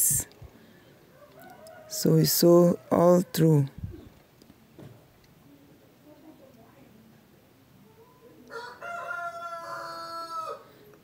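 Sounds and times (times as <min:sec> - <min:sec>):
rooster crowing: 0:01.1 - 0:03.7, 0:08.5 - 0:10.9.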